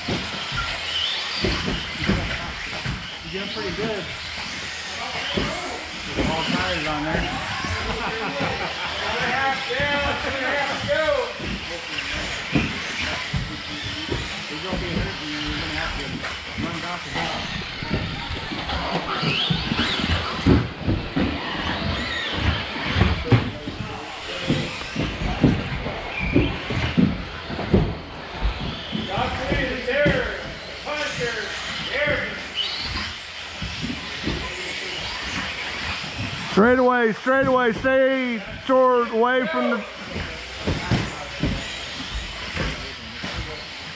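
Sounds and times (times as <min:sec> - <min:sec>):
toy car chassis clacking: 0:00.0 - 0:36.8, 0:40.0 - 0:43.9
electric motors whining: 0:00.0 - 0:43.9
indistinct voices: 0:00.0 - 0:43.9.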